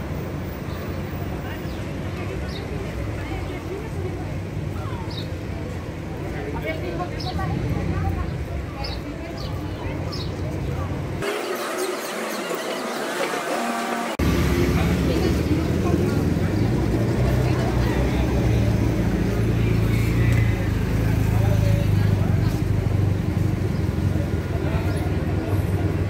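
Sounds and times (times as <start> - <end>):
street sounds: 0.0 - 26.0
people talking: 1.1 - 26.0.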